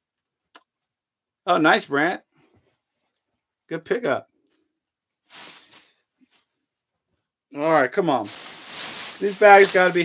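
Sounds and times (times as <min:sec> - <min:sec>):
bag of shirts rustling: 0:05.3 - 0:06.5, 0:08.2 - 0:10.0.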